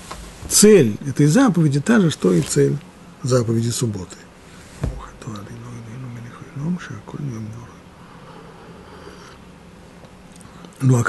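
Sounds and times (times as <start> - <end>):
dull thump: 4.8 - 5.2.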